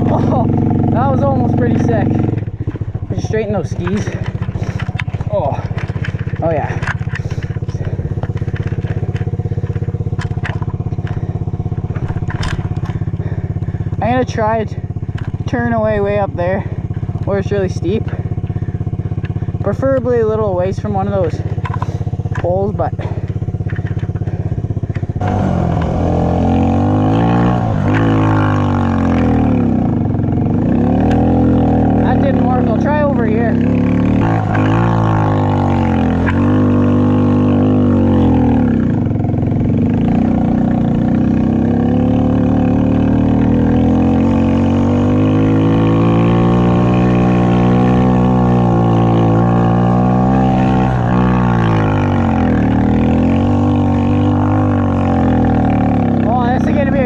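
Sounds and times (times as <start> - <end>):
quad engine revving: 0.0 - 57.0.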